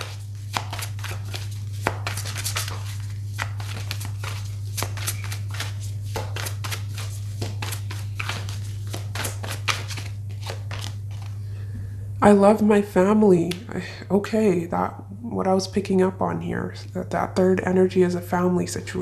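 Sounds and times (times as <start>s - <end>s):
cards being shuffled: 0.0s - 11.4s
steady low hum: 0.0s - 19.0s.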